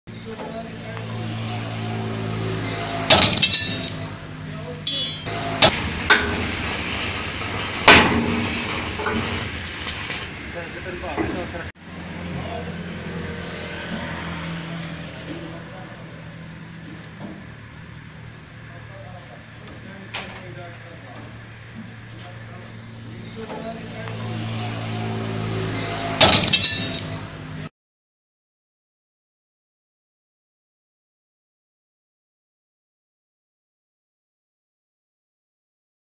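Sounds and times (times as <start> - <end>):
engine hum: 0.1 - 27.7.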